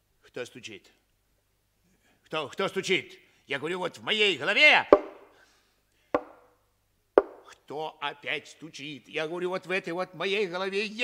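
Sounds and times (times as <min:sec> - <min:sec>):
sharp knocking: 0:05.0 - 0:05.3, 0:06.2 - 0:06.4, 0:07.2 - 0:07.5.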